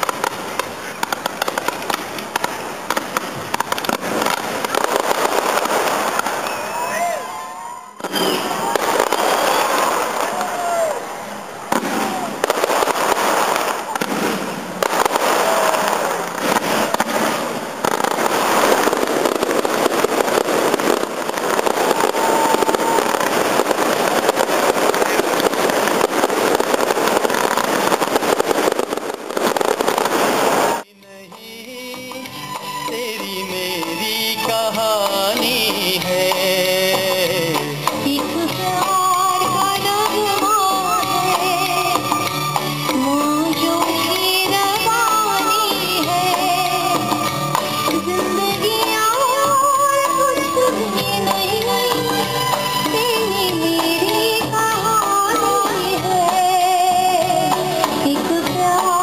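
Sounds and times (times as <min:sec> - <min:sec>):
fireworks crackling and popping: 0:00.0 - 0:59.0
people's voices: 0:00.0 - 0:59.0.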